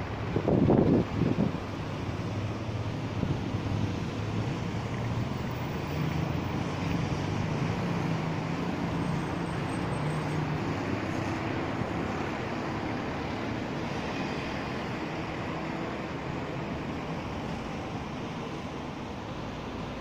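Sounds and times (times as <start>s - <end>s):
motor engines humming: 0.0s - 20.0s
traffic noise: 0.0s - 20.0s
wind on microphone: 0.1s - 3.6s.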